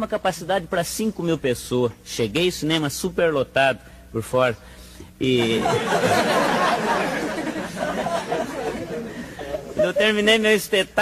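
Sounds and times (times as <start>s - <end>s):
audience laughing: 5.4s - 10.3s
crowd chattering: 5.6s - 10.0s.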